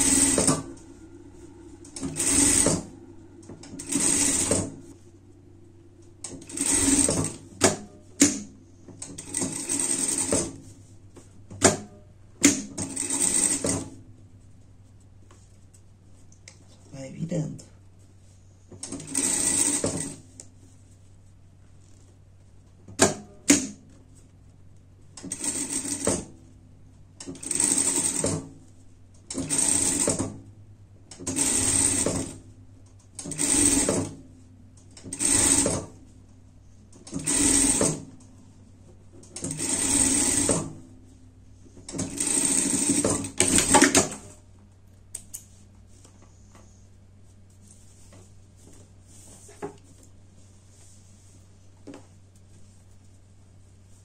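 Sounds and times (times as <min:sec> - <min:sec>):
low steady hum: 0:00.0 - 0:27.6, 0:28.5 - 0:54.0
sewing machine stitching: 0:03.6 - 0:04.9, 0:09.0 - 0:10.6, 0:12.4 - 0:13.9, 0:18.8 - 0:20.2, 0:29.3 - 0:30.4, 0:31.2 - 0:32.4, 0:33.2 - 0:34.2, 0:35.0 - 0:36.0, 0:37.0 - 0:38.1, 0:39.3 - 0:40.8, 0:41.9 - 0:44.2.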